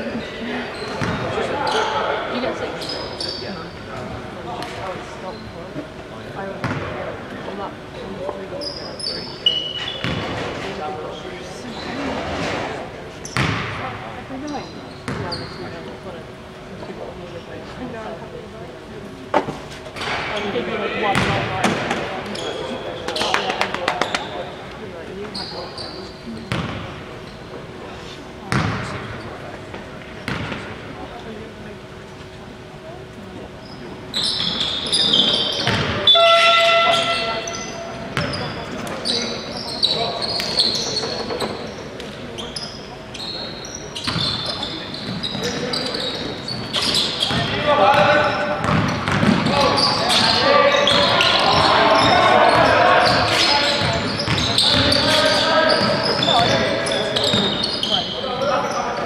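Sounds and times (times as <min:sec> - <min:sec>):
shoes squeaking: 0:08.6 - 0:10.8, 0:22.3 - 0:26.6, 0:33.6 - 0:59.0
basketball bouncing on wooden floor: 0:26.5 - 0:26.8, 0:48.6 - 0:49.6
players calling out: 0:33.6 - 0:59.0.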